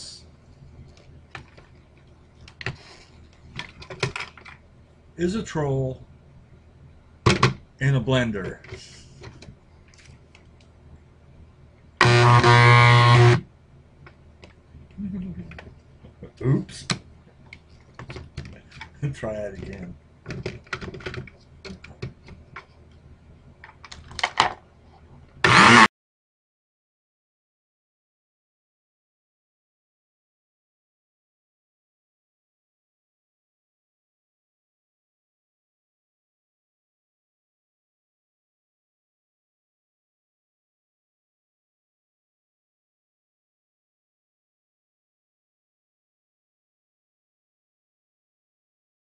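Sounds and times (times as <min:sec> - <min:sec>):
loud burst of noise: 0:12.0 - 0:13.4, 0:25.4 - 0:25.9.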